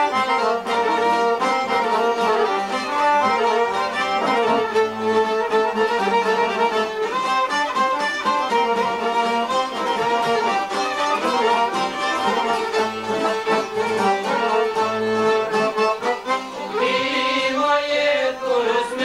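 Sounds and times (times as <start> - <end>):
plucked lutes playing folk music: 0.0 - 19.0.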